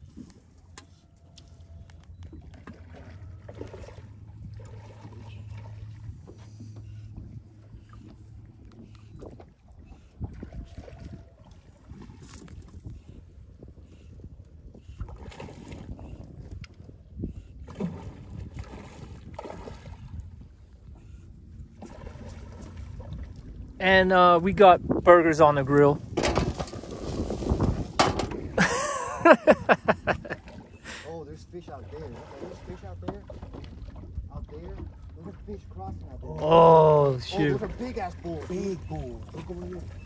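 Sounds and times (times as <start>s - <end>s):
water lapping against boat hull: 0.0s - 40.0s.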